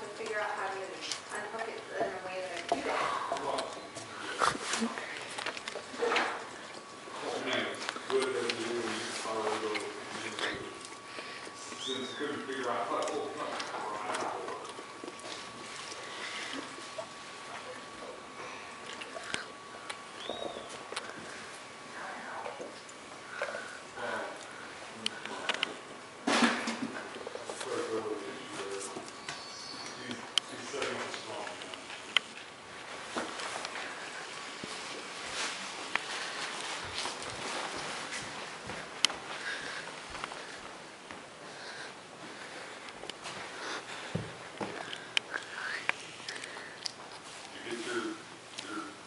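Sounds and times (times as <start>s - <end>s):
dog chewing and licking rubber toy: 12.4s - 17.9s
footsteps shuffling on hardwood floor: 32.8s - 41.3s, 43.2s - 44.9s.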